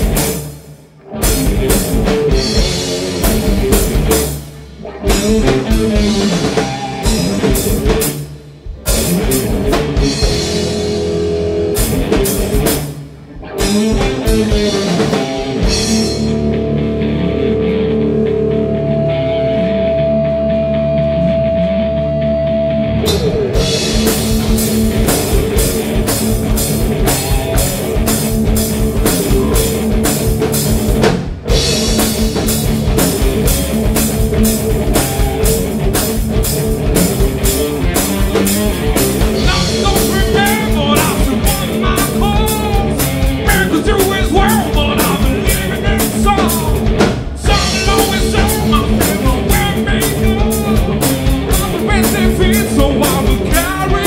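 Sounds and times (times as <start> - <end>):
rock band playing: 0.0 - 54.0
guitars holding sustained notes: 8.9 - 30.9.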